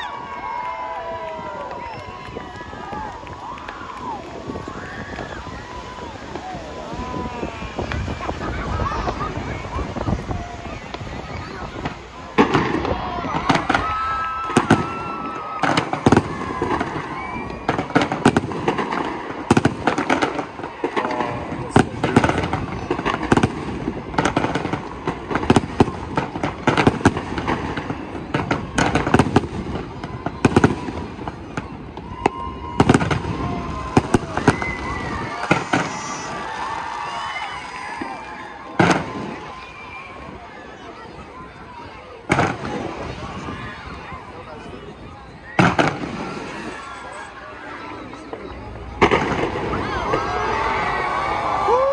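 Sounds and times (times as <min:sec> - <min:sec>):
fireworks bangs: 0:00.0 - 0:51.9.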